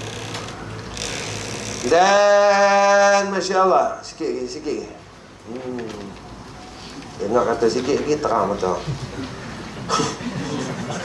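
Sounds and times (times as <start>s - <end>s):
faint room noise: 0.0s - 11.0s
person speaking: 1.8s - 6.3s.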